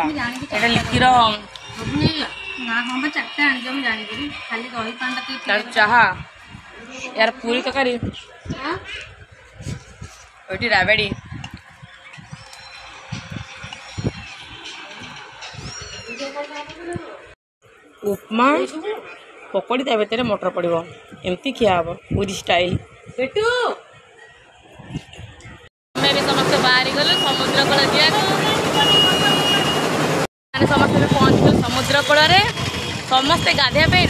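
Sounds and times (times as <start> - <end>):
people's voices: 0.0 - 11.7, 18.0 - 29.8, 30.6 - 34.0.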